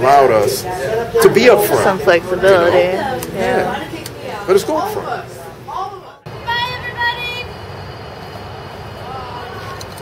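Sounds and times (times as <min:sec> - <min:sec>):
street traffic rumble: 0:06.3 - 0:10.0.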